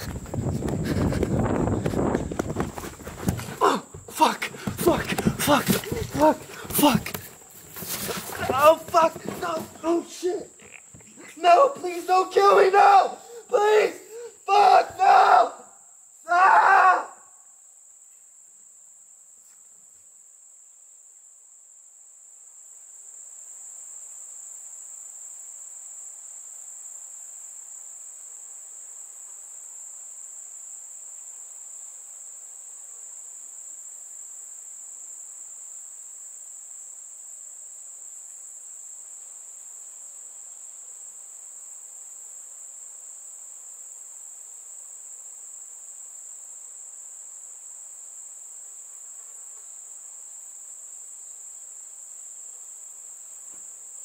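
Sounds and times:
crickets trilling: 0:00.0 - 0:54.0.

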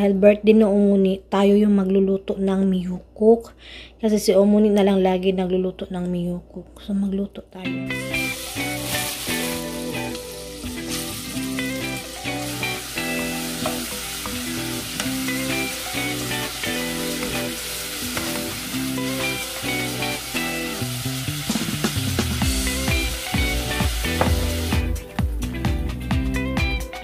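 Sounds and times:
background music: 0:07.5 - 0:27.0
beef sizzling in a pot: 0:07.9 - 0:25.0.

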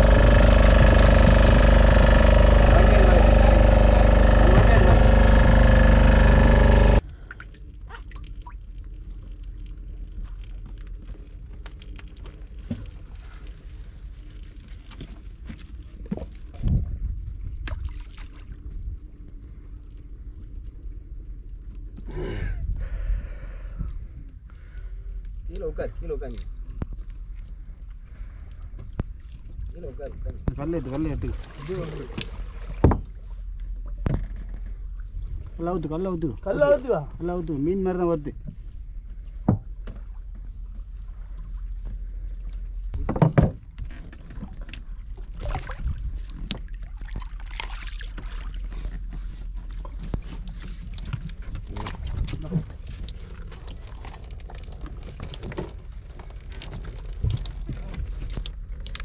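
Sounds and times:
steady low rumble: 0:00.0 - 0:07.1
wind and water rumble: 0:00.0 - 0:59.0.

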